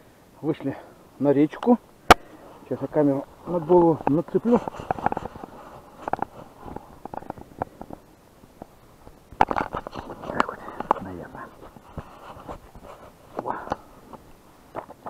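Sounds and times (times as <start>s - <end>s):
camera handling noise: 4.0s - 8.0s, 8.6s - 13.8s.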